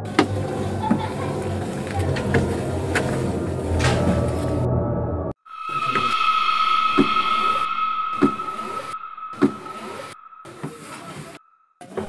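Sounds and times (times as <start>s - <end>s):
eerie suspense music tone: 0.0s - 12.0s.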